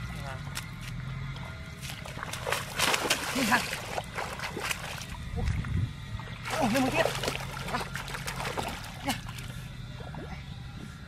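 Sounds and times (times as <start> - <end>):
hands splashing in muddy water: 1.8 - 5.6, 6.4 - 9.5.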